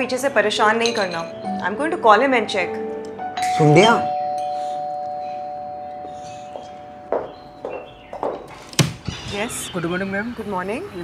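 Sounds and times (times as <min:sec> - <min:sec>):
two-note doorbell chime: 0:03.4 - 0:07.9.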